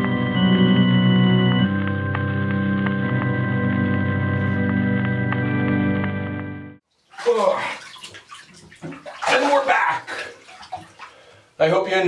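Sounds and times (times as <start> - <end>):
background music with held notes: 0.0 - 6.8
water sloshing in a bathtub: 6.8 - 11.8
man talking: 7.2 - 7.9, 9.2 - 10.4, 11.6 - 12.0.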